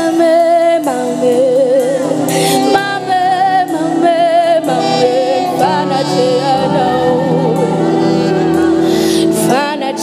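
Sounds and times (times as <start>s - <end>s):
woman singing with vibrato: 0.0s - 10.0s
sustained instrumental accompaniment: 0.1s - 10.0s.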